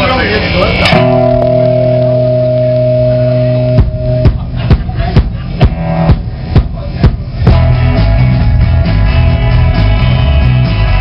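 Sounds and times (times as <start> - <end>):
electric guitar chord ringing: 0.7 - 4.9
drum kit beat: 0.9 - 11.0.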